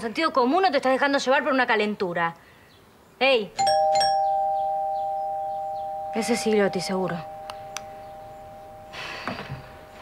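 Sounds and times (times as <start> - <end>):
two-note doorbell chime: 3.6 - 10.0.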